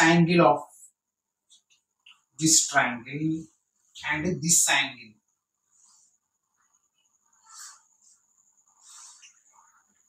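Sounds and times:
chalk scratching on blackboard: 0:05.7 - 0:10.0.

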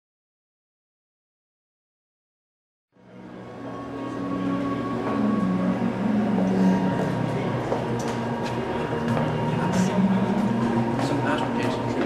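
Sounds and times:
faint high tone: 0:03.0 - 0:07.7
low hum and rumble: 0:03.0 - 0:12.0.

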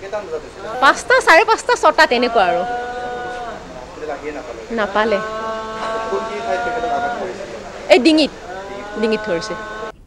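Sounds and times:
steady humming tone: 0:00.0 - 0:10.0
woman speaking: 0:00.7 - 0:02.7, 0:04.7 - 0:05.3, 0:07.9 - 0:09.7.

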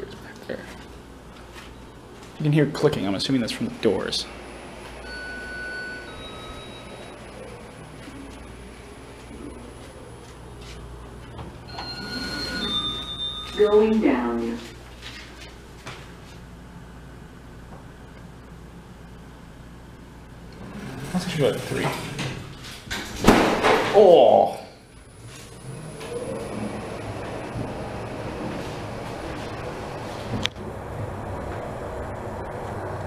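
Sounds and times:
elevator chime: 0:05.0 - 0:08.0, 0:11.6 - 0:14.6
elevator doors sliding open: 0:11.5 - 0:14.2, 0:20.6 - 0:23.3, 0:25.2 - 0:33.0
sharp thud of doors: 0:22.2 - 0:24.0.

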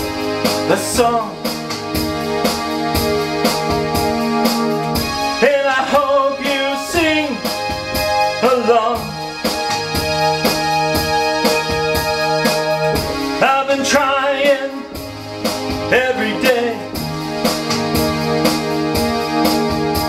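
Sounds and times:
drum beat: 0:00.0 - 0:20.0
electronic keyboard chords: 0:00.0 - 0:20.0
wavering lead melody: 0:00.0 - 0:20.0.

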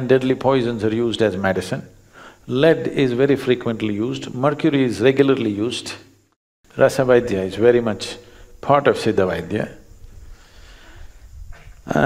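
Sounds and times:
man speaking: 0:00.0 - 0:06.1, 0:06.8 - 0:09.8.

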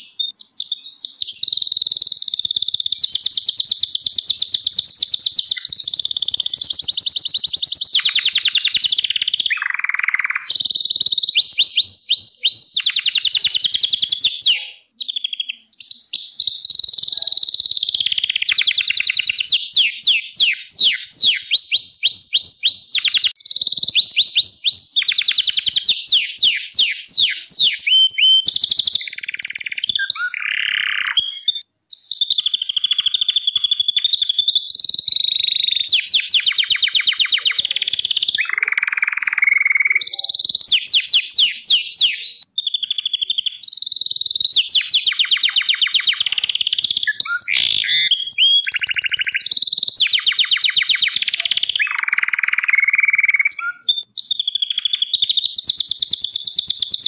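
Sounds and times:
canary singing trills: 0:00.0 - 0:57.0.

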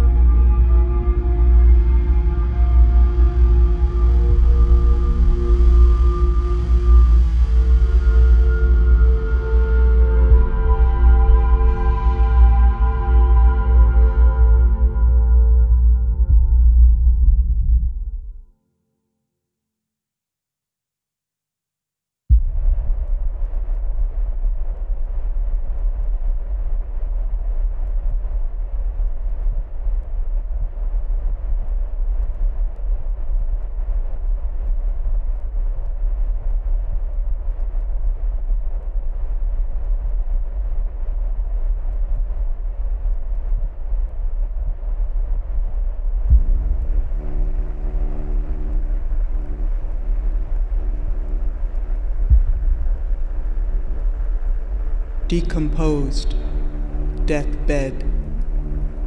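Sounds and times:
deep rumbling drone: 0:00.0 - 0:18.5, 0:22.3 - 0:59.0.

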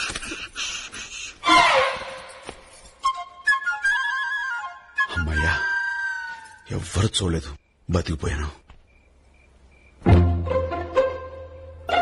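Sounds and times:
flute melody: 0:01.4 - 0:02.4, 0:03.0 - 0:06.7.

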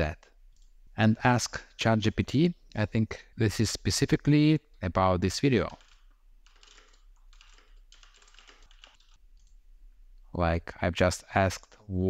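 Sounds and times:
faint keyboard typing: 0:05.5 - 0:09.6, 0:11.4 - 0:11.9.

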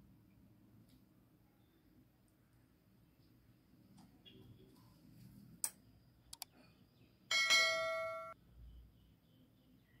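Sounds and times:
bright bell ding: 0:07.3 - 0:08.4.

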